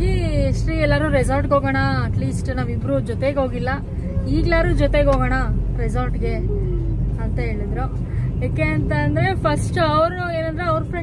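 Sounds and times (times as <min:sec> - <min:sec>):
car driving rumble: 0:00.0 - 0:11.0
woman talking: 0:00.0 - 0:11.0.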